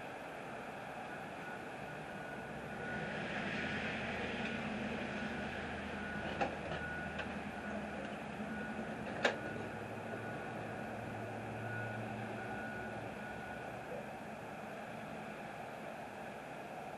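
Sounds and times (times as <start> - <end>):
steady rumble with low hum: 0.0 - 16.9.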